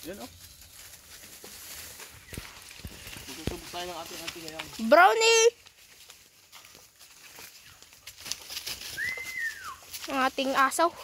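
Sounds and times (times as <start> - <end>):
footsteps crunching on leaf litter: 0.0 - 11.0
whistled call sliding in pitch: 9.0 - 9.8.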